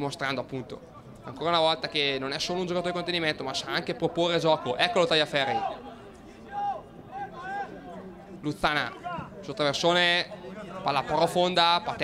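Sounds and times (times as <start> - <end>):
distant voices shouting: 5.3 - 8.1.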